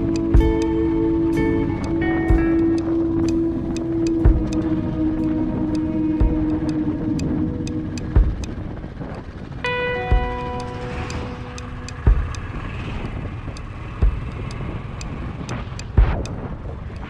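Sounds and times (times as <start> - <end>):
background music with thumps: 0.0 - 8.8, 10.0 - 13.3, 14.0 - 14.8, 15.4 - 17.0
motorcycle road and wind noise: 0.0 - 17.0.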